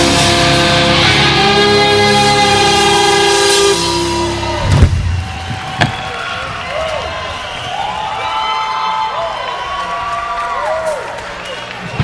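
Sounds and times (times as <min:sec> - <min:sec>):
rock band chord ringing out: 0:00.0 - 0:05.4.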